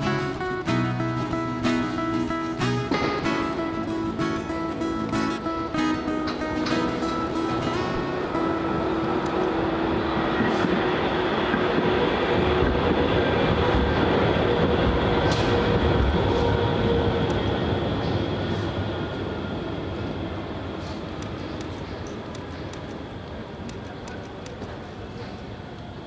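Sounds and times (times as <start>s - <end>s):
tram rumbling along tracks: 0.0s - 26.0s.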